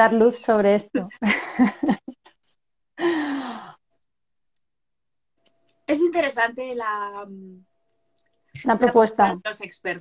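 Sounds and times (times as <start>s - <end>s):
woman sighing: 3.0s - 3.8s.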